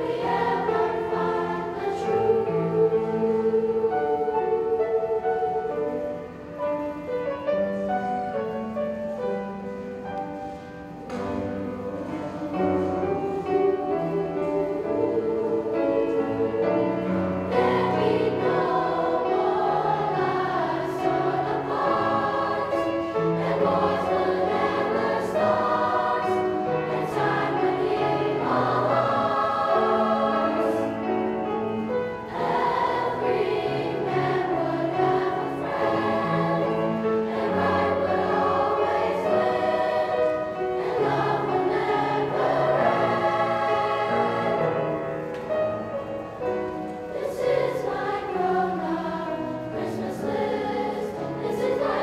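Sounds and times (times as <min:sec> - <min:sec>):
children's choir singing: 0:00.0 - 0:52.0.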